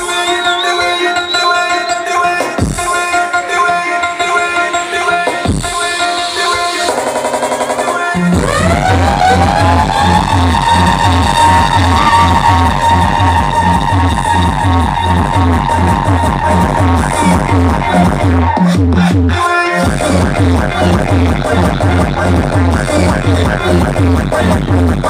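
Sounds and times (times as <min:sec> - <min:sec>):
electronic dance music: 0:00.0 - 0:25.0
heavy fast kick drum beat: 0:02.4 - 0:03.0, 0:05.4 - 0:05.8, 0:06.8 - 0:25.0
rising sweep: 0:08.3 - 0:18.2.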